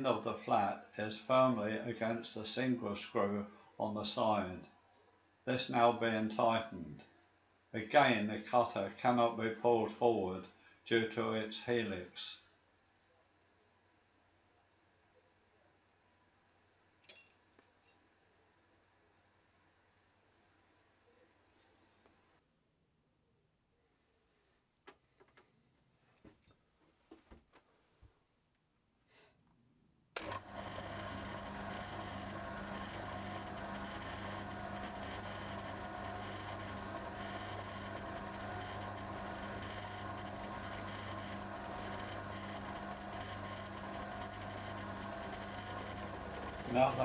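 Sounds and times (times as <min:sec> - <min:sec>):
milling machine humming: 0:30.2 - 0:47.0.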